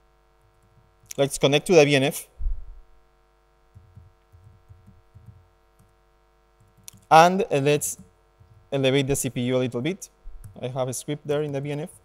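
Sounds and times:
electrical hum: 0.0 - 12.0
laptop keystrokes: 3.8 - 6.0, 6.6 - 7.1, 10.4 - 10.6.

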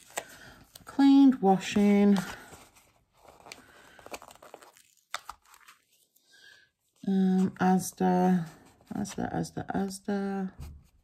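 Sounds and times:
paper sticker sheets rustling: 0.0 - 6.1.

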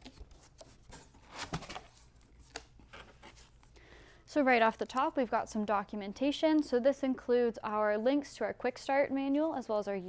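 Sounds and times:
cardboard rustling and scraping: 0.0 - 3.6.

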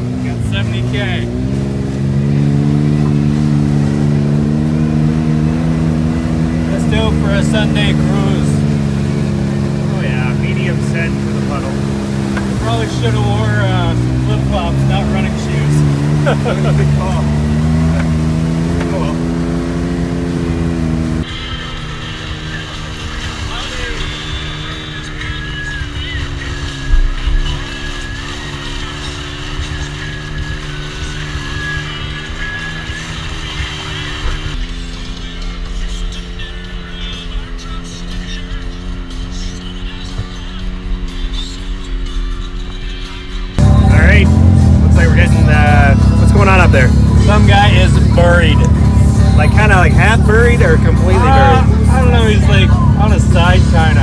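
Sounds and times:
vehicle engine running: 0.0 - 54.0.

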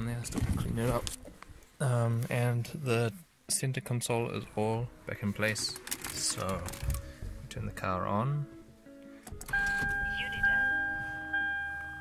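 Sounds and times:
soft background music: 2.0 - 12.0
car dashboard warning chime: 9.5 - 12.0.

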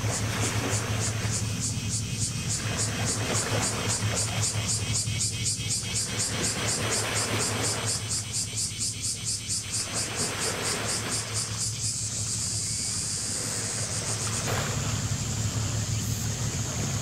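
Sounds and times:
ship engine hum: 0.0 - 17.0.

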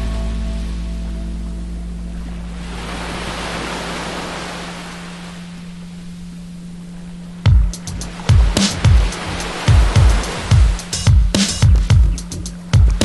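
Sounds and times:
music track: 0.0 - 2.8, 7.4 - 13.0
steady low hum: 0.0 - 13.0
surf washing up beach: 2.4 - 6.3, 7.1 - 11.9.

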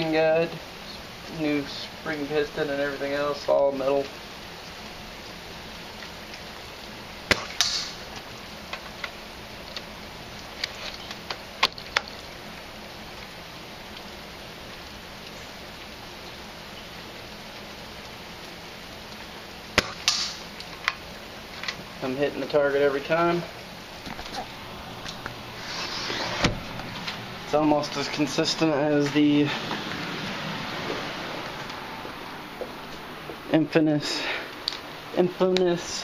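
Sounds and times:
airsoft rifle shots: 7.3 - 8.0, 19.8 - 20.4.

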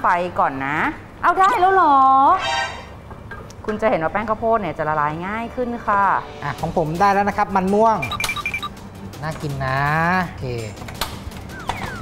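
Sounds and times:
short electronic beeps: 8.0 - 8.7.

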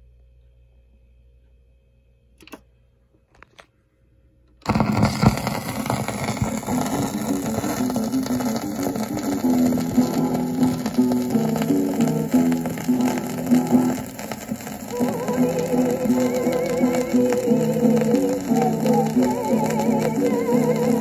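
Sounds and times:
record surface noise: 4.5 - 21.0
instrumental music from a record: 4.7 - 21.0.

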